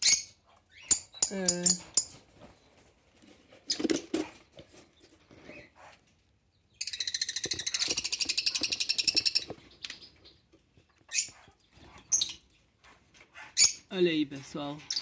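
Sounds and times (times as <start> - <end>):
lovebirds chattering: 0.0 - 2.9, 3.6 - 15.0.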